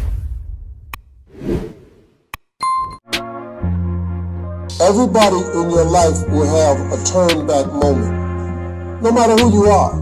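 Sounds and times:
whoosh sound effects: 1.3s - 2.1s.

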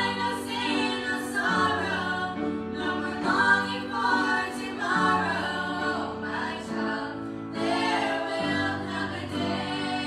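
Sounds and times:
voices singing gospel in harmony: 0.0s - 10.0s.

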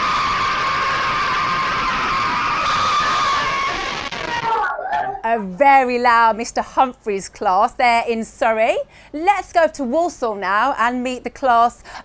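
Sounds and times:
children cheering and screaming: 0.0s - 5.2s.

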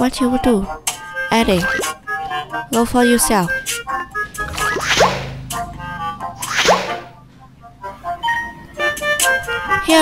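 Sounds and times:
cartoon swoosh: 4.4s - 5.4s, 6.4s - 7.1s.

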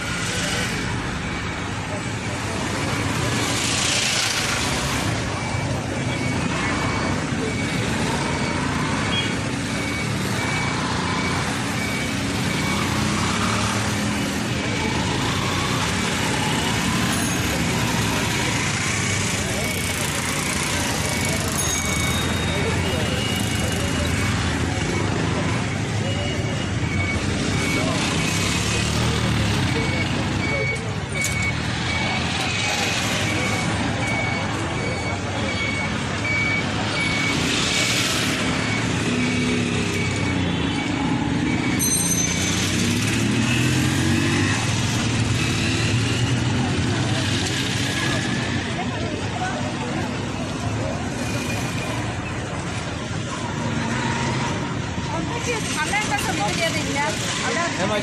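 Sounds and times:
people talking: 0.0s - 58.0s
street traffic noise: 0.0s - 58.0s
faint high beep: 21.0s - 28.9s, 38.6s - 44.3s.

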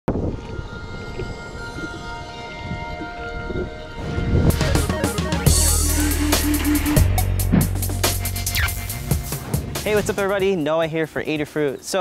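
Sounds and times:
motor whine: 0.1s - 7.0s.

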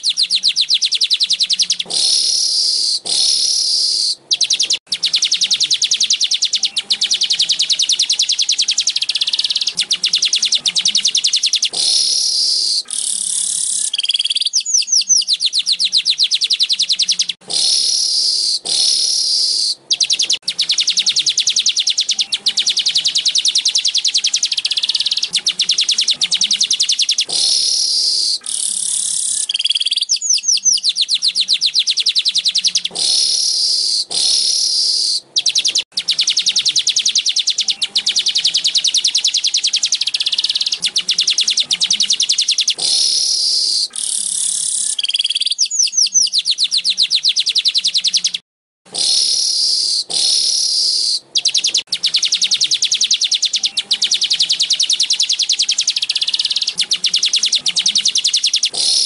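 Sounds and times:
descending whistled bird notes: 0.0s - 48.4s, 49.0s - 59.0s
buzzy bird chatter: 0.0s - 59.0s.

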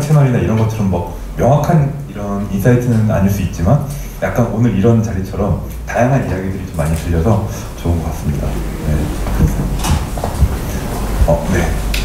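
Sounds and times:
microphone handling knocks: 9.2s - 12.0s.

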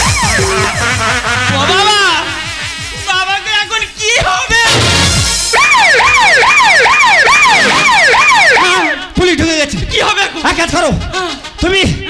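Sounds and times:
buzzing wobbling electronic tone: 0.0s - 3.1s
fast low electronic pulse: 0.0s - 3.1s.

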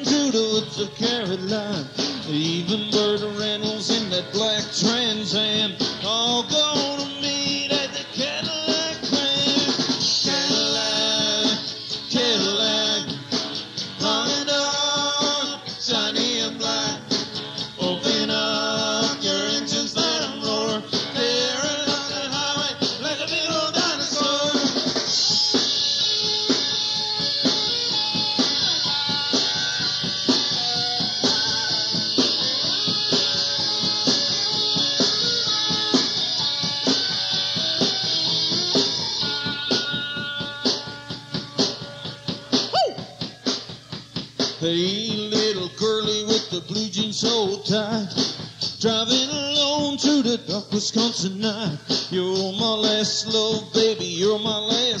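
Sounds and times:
bass guitar: 0.0s - 55.0s
drum kit: 0.0s - 55.0s
lead guitar with bending notes: 25.2s - 44.2s.

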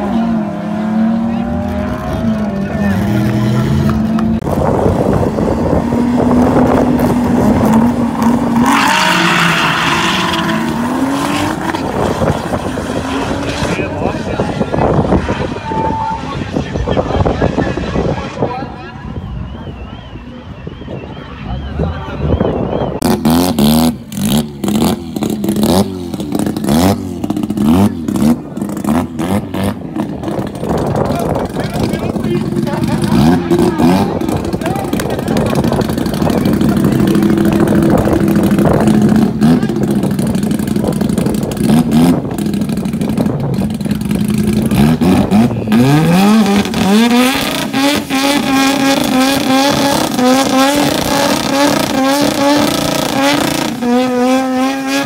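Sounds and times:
truck engine revving: 0.0s - 18.5s, 19.2s - 55.0s
tyres spinning in a burnout: 0.1s - 18.8s, 21.4s - 55.0s.

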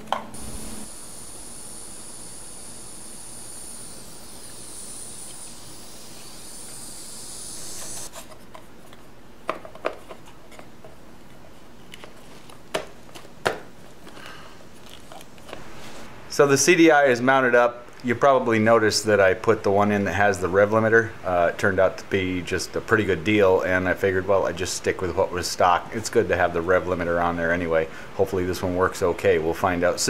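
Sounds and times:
steady high hiss: 0.4s - 8.1s, 15.6s - 30.0s.

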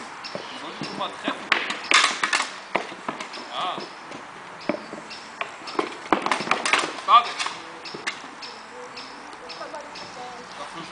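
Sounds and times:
weapons striking shields: 0.9s - 3.9s, 4.7s - 8.2s.

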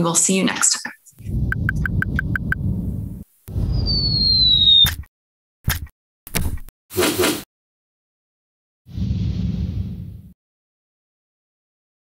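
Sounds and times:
downward sliding whistle: 3.6s - 5.0s.

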